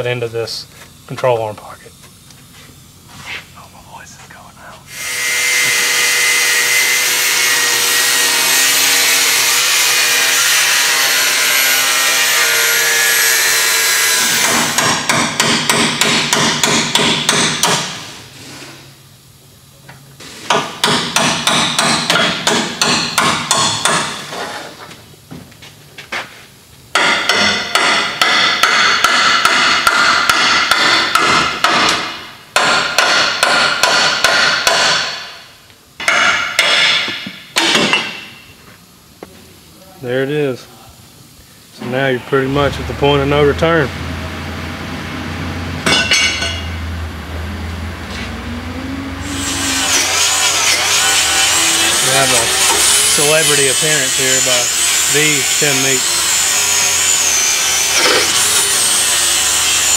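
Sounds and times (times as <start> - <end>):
power tool running: 4.9 - 18.1, 42.3 - 59.9
chisel striking metal: 14.3 - 17.9, 20.5 - 24.2, 26.9 - 35.4, 36.0 - 38.3, 45.8 - 46.8.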